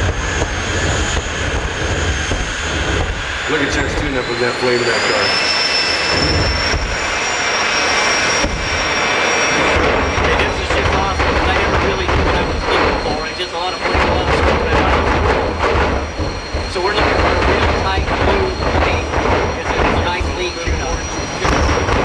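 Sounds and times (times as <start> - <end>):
jet turbine engines whining: 0.0 - 22.0
voices: 3.5 - 5.4, 10.0 - 22.0.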